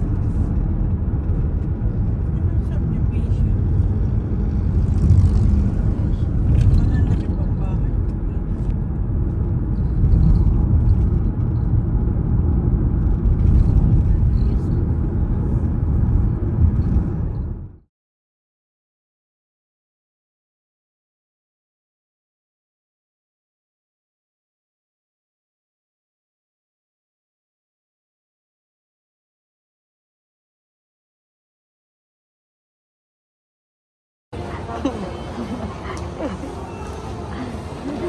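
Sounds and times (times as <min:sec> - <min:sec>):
car road and wind noise: 0:00.0 - 0:17.9, 0:34.4 - 0:38.0.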